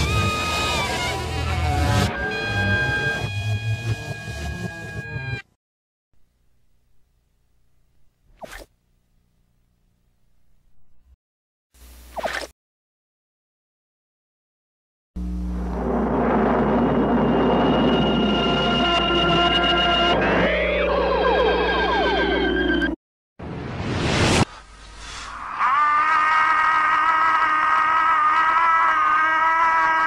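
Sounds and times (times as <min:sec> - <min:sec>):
reversed swish with falling squeak: 0:08.3 - 0:08.7.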